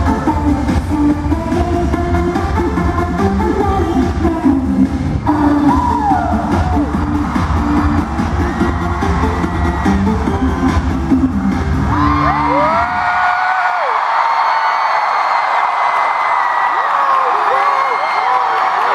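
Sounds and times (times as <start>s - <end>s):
crowd screaming and cheering: 0.0s - 18.9s
pop song through arena speakers: 0.0s - 18.9s.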